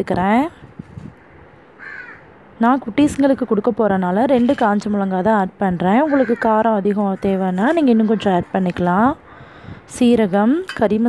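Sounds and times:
faint crow caw: 1.8s - 2.3s, 6.0s - 8.4s, 9.2s - 9.8s.

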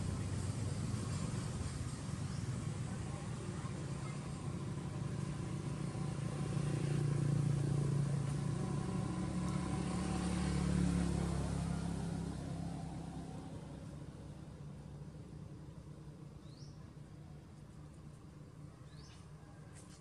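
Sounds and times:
vehicle engine passing by: 0.0s - 16.8s.

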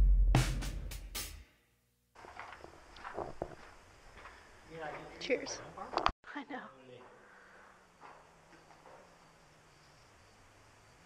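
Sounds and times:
faint footsteps on dirt: 2.2s - 6.1s, 7.0s - 9.3s.

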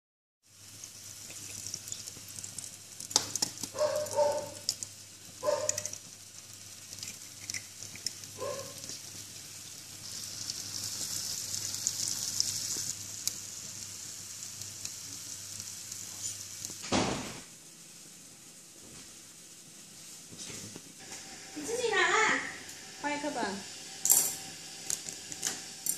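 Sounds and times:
egg sizzling in a pan: 0.4s - 25.9s.

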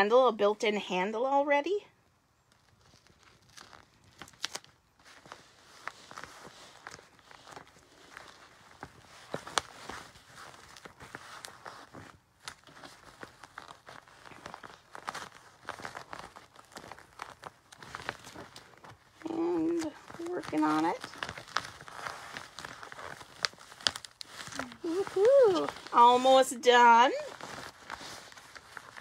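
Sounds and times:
plastic bag crinkling: 2.4s - 29.0s.

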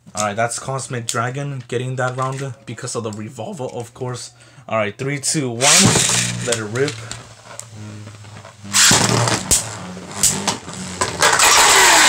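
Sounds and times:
spinning top whirring rattle: 10.2s - 12.0s.

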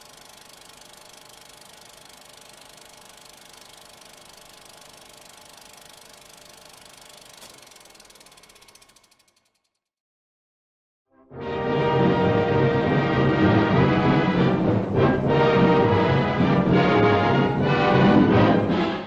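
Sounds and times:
film projector clattering: 0.0s - 9.8s.

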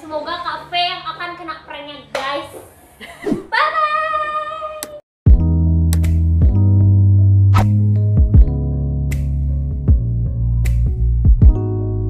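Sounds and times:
woman talking: 0.0s - 2.7s.

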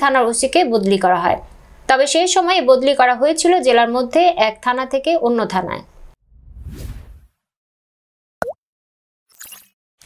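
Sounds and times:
whoosh: 6.2s - 7.4s
brief swish: 6.3s - 7.4s.

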